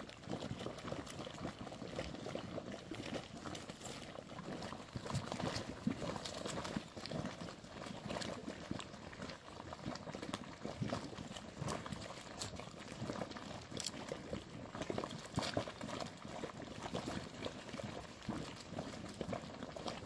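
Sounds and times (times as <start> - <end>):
mud bubbling and popping: 0.0 - 20.0.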